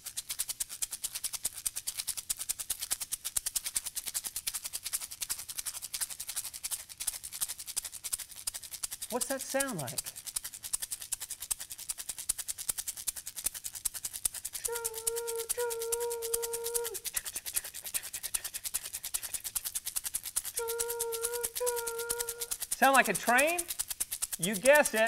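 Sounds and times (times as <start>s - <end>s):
egg shaker chugging rhythm: 0.0s - 25.0s
two-part hooting tone: 20.6s - 22.5s.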